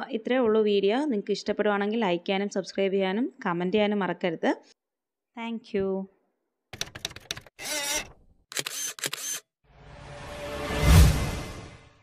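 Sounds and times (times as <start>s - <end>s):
camera shutter clicks: 7.6s - 9.5s.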